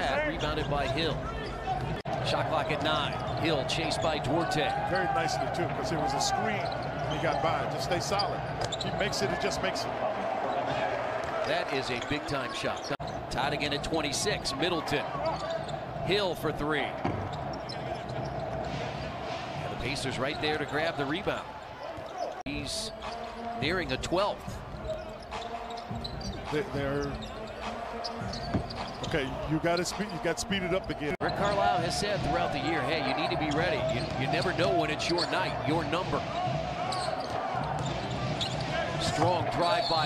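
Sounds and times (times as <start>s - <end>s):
arena crowd noise: 0.0s - 40.0s
faint basketball court sounds: 0.0s - 40.0s.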